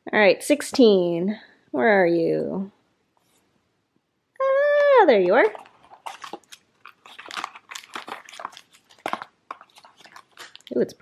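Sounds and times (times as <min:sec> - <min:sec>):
packet crinkling and rustling: 0:05.1 - 0:11.0.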